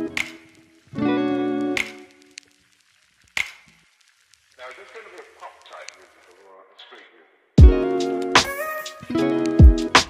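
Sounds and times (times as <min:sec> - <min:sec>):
faint voice: 0:04.6 - 0:07.3.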